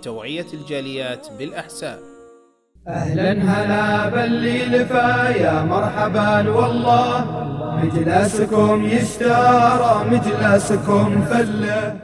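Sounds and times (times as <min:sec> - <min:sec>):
person chanting a melodic line: 0:00.0 - 0:02.6.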